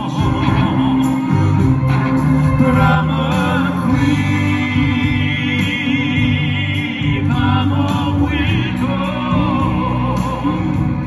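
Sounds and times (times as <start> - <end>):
male vocal quartet singing in harmony: 0.0 - 11.0.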